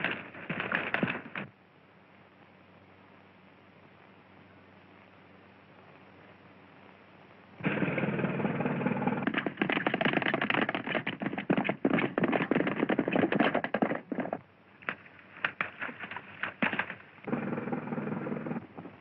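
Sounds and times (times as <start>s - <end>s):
horse galloping hoofbeats: 0.0s - 1.5s, 7.6s - 19.0s
faint film hiss: 0.0s - 9.2s.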